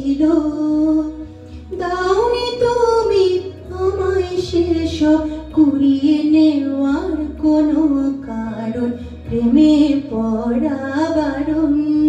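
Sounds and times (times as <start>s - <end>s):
woman singing into a microphone: 0.0s - 12.0s.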